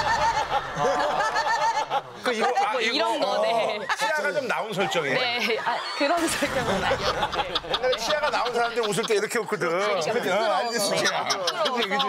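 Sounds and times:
people laughing: 0.0 - 12.0.

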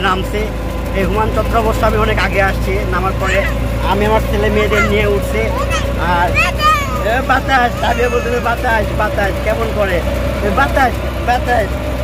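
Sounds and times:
voices: 0.0 - 11.7
small vehicle engine running: 0.0 - 12.0.

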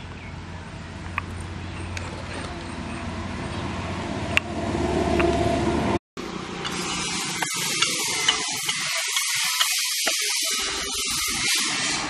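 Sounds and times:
steel ladle scraping steel pot: 6.6 - 12.0.

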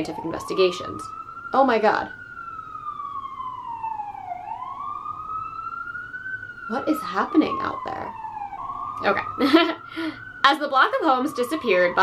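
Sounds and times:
emergency siren wailing: 0.0 - 12.0.

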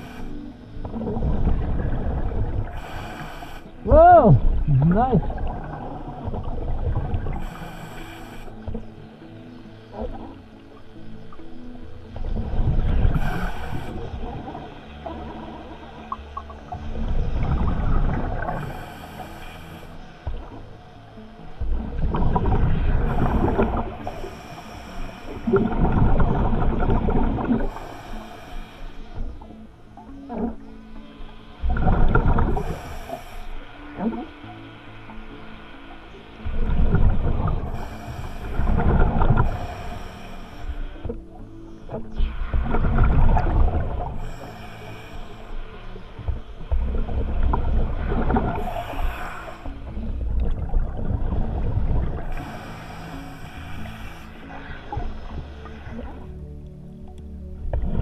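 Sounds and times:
hissing regulator inhalations: 0.0 - 3.9, 6.3 - 9.3, 13.0 - 16.8, 18.2 - 21.7, 23.0 - 26.0, 26.7 - 30.4, 31.2 - 35.2, 37.6 - 42.6, 43.4 - 47.4, 48.2 - 50.1, 51.5 - 56.3.

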